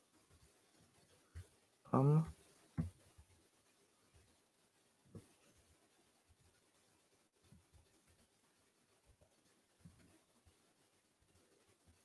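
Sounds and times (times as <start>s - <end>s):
soft low taps: 2.7s - 3.4s
faint low thump: 2.8s - 3.1s.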